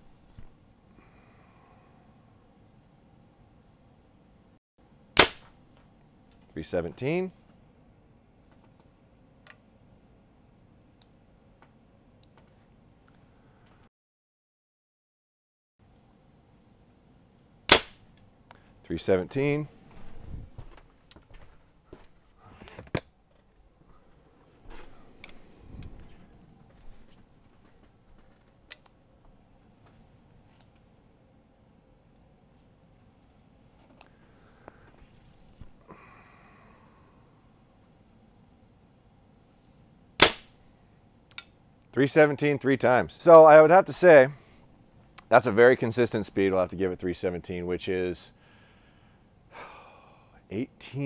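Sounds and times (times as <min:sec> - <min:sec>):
compound bow shot crack: 0:05.2 - 0:05.6, 0:17.7 - 0:18.2, 0:40.2 - 0:40.6.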